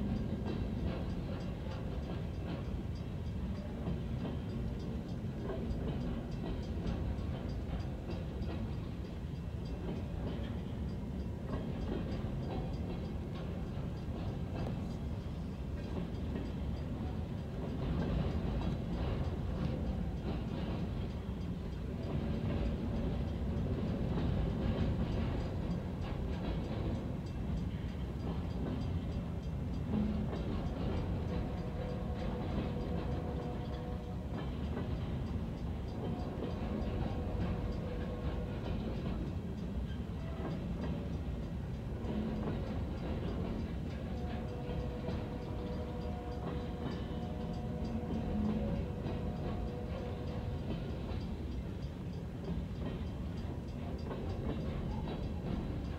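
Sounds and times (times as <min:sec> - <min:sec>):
faint steady tones: 0:00.0 - 0:55.9
train wheels rumbling on rail: 0:00.0 - 0:55.9.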